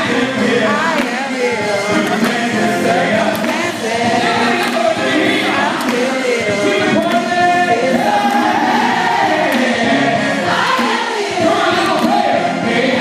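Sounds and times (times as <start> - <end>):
choir singing together: 0.0 - 13.0
man singing gospel lead: 0.0 - 13.0
woman singing: 0.5 - 2.2.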